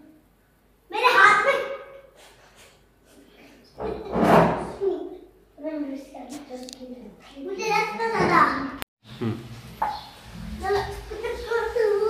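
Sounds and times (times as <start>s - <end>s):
child's voice: 0.9s - 1.9s, 4.6s - 8.8s, 10.6s - 12.0s.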